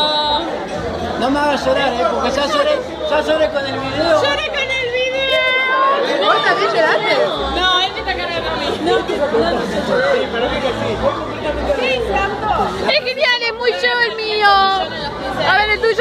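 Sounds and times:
people talking at once: 0.0 - 16.0.

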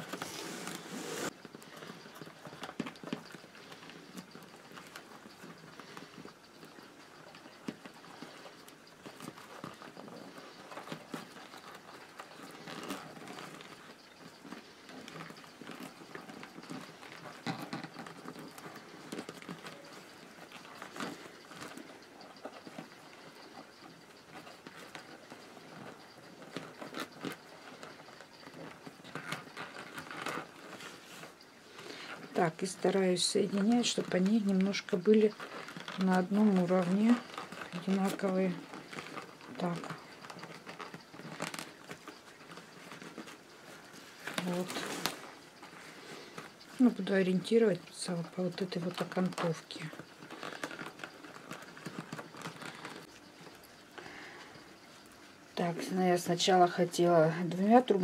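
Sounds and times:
newspaper tubes rustling and tapping: 0.0 - 58.0.

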